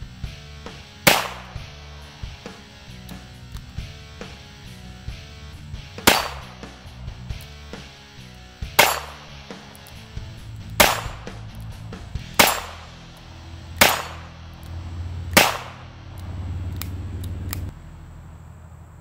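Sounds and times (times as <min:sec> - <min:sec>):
background music: 0:00.0 - 0:17.7
revolver shots: 0:01.0 - 0:04.8, 0:05.7 - 0:07.8, 0:08.6 - 0:16.2.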